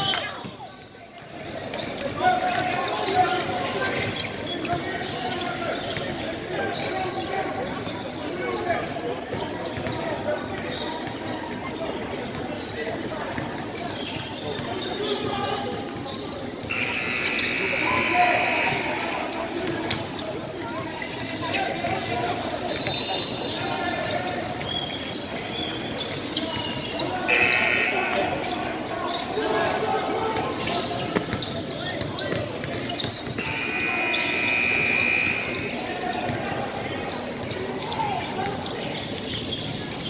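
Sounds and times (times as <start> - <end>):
crowd chatter echoing: 0.0 - 40.0.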